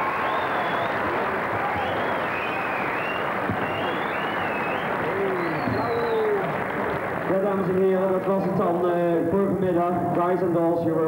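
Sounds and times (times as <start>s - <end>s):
audience cheering: 0.0s - 8.8s
audience clapping: 0.0s - 8.8s.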